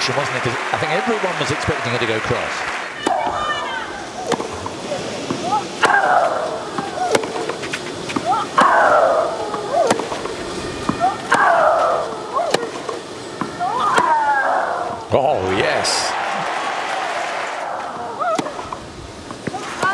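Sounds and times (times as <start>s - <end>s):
racket striking tennis ball: 4.2s - 11.5s, 12.4s - 14.2s, 17.8s - 19.9s.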